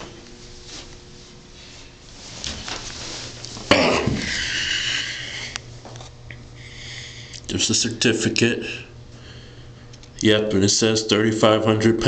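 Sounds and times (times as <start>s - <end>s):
steady low hum: 0.0s - 12.0s
loud breath close to microphone: 6.6s - 7.4s.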